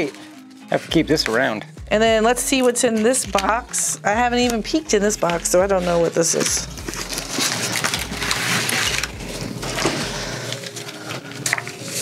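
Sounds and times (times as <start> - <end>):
cardboard box and paper rustling: 5.8 - 12.0.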